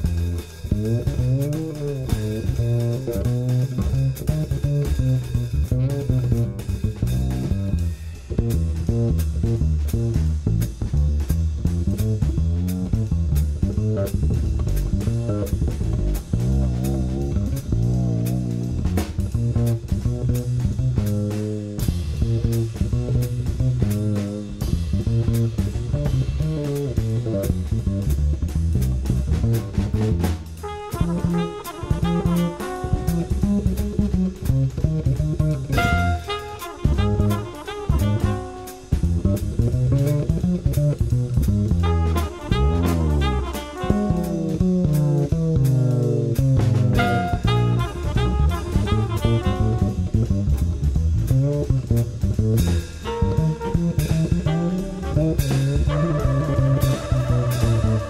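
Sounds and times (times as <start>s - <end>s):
double bass lines: 0.0s - 58.0s
drum kit cymbals and drums: 0.0s - 58.0s.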